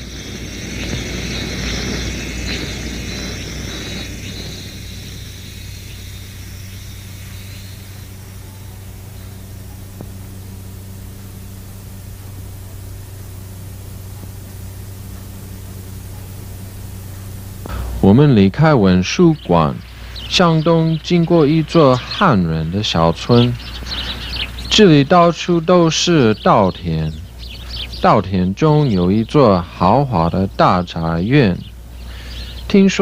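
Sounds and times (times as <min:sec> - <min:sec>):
faint background noise: 0:00.0 - 0:33.0
steady low hum: 0:00.0 - 0:33.0.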